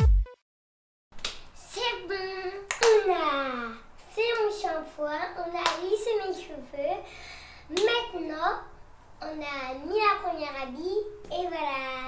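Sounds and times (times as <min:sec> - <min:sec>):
girl's drawn-out wordless voice: 0:01.6 - 0:12.0
hands clapping: 0:02.7 - 0:03.0, 0:05.6 - 0:05.8.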